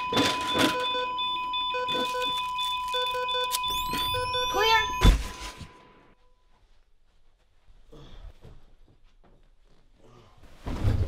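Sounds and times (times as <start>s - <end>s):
alarm beeps: 0.0s - 6.5s
patient monitor flatline tone: 0.0s - 6.6s.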